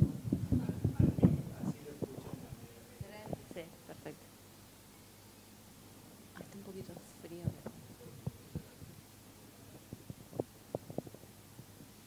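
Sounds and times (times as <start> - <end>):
microphone handling knocks: 0.0 - 2.4.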